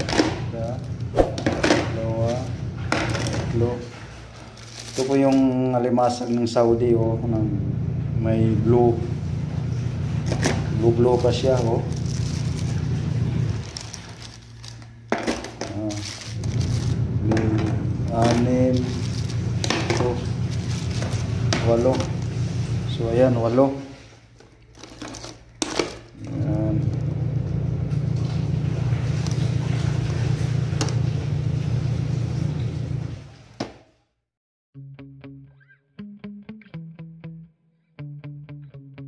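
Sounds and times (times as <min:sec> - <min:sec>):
low mechanical hum: 0:00.0 - 0:33.6
plastic bag crinkling: 0:02.0 - 0:06.6, 0:10.2 - 0:27.1.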